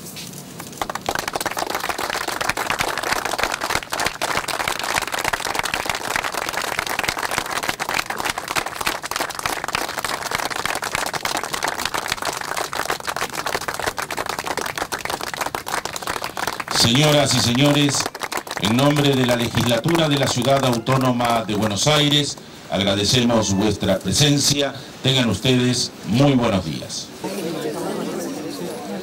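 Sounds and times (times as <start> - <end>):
crowd applauding: 0.6 - 24.4.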